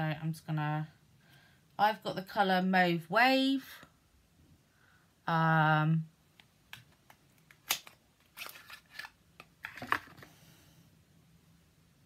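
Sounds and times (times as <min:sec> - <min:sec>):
plastic pot clicking and scraping: 0:06.8 - 0:10.3
small box being opened: 0:07.4 - 0:10.4.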